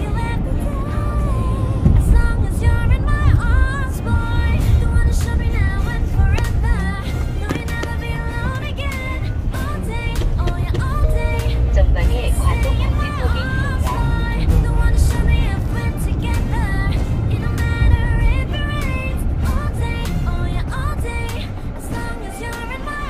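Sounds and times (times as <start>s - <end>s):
car driving rumble: 0.0s - 23.0s
song with singing voice: 0.0s - 23.0s.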